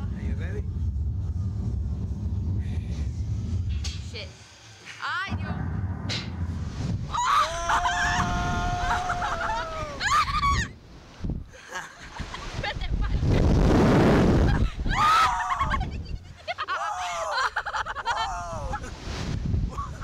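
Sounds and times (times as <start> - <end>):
person screaming: 7.1 - 10.6.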